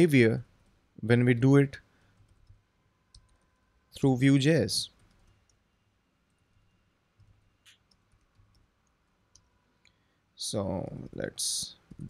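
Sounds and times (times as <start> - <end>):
faint keyboard typing: 1.8 - 4.0, 4.8 - 10.0.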